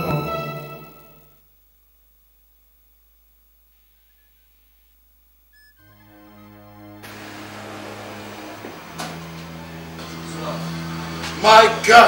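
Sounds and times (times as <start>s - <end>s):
background noise hiss: 0.0s - 12.0s
sustained keyboard chords: 5.8s - 12.0s.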